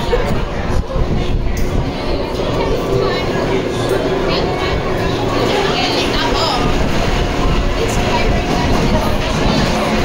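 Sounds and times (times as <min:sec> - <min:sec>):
people talking: 0:00.0 - 0:10.0
roller coaster rumbling on track: 0:00.0 - 0:10.0.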